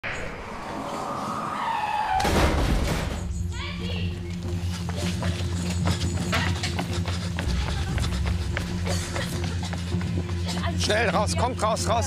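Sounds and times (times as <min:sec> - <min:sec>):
car crash impact: 0:02.1 - 0:03.2.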